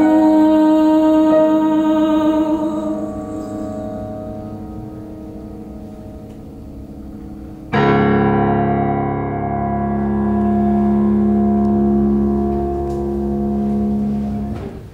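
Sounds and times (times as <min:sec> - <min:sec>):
loud low piano chord ringing: 0:00.0 - 0:14.8
soft piano notes: 0:00.0 - 0:14.9.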